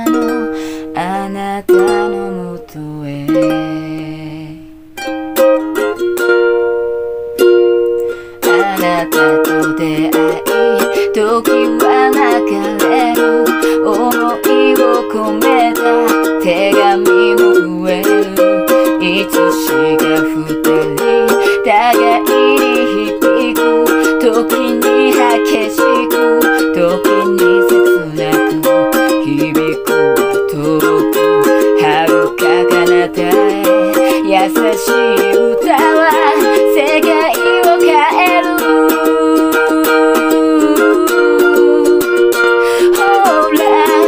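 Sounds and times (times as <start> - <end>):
ukulele strumming: 0.0 - 44.0.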